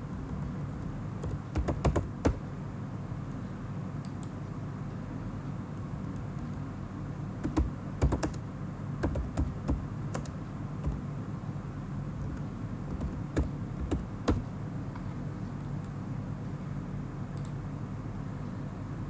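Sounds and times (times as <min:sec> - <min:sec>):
steady low hum: 0:00.0 - 0:19.0
computer keyboard typing: 0:01.2 - 0:02.4, 0:07.4 - 0:08.4, 0:09.0 - 0:11.0, 0:12.9 - 0:14.5.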